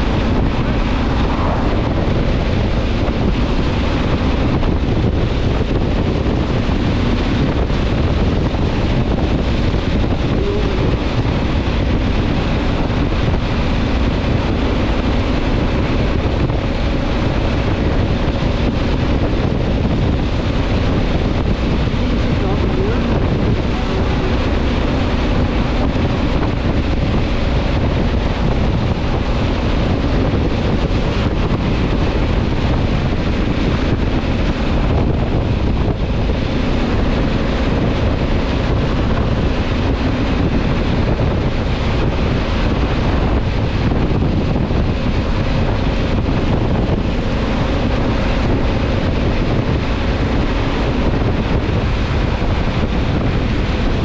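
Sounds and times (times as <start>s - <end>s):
motorcycle engine droning: 0.0s - 54.0s
wind rushing over microphone: 0.0s - 54.0s.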